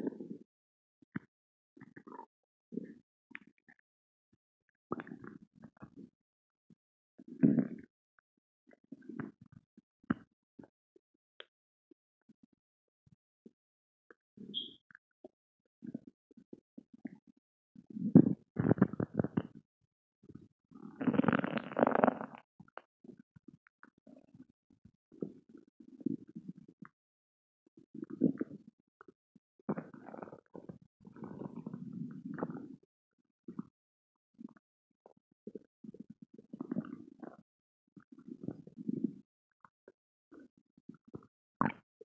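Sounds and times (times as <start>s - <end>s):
stomach growling and gurgling: 0.0s - 0.4s, 1.2s - 3.8s, 4.9s - 6.1s, 7.2s - 7.9s, 8.7s - 10.7s, 15.8s - 19.6s, 20.2s - 26.9s, 27.8s - 32.9s, 33.5s - 33.7s, 34.3s - 41.9s.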